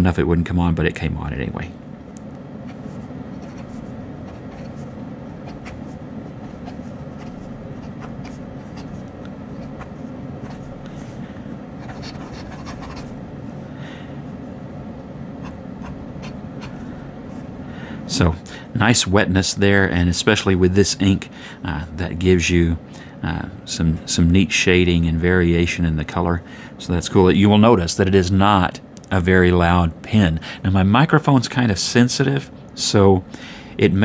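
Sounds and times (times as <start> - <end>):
air conditioner hum: 0.0 - 34.0
pen scratching on paper: 2.7 - 10.7, 11.8 - 13.2, 15.4 - 16.9.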